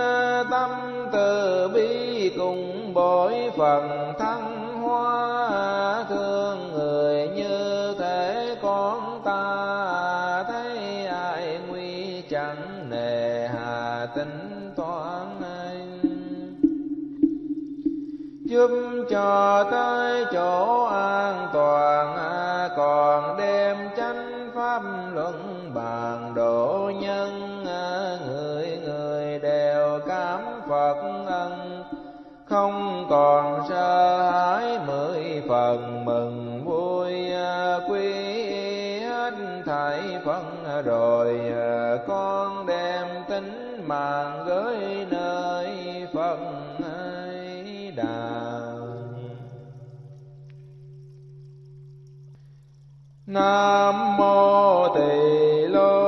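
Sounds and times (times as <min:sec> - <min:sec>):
buddhist devotional music: 0:00.0 - 0:56.0
low held tone: 0:16.0 - 0:18.6.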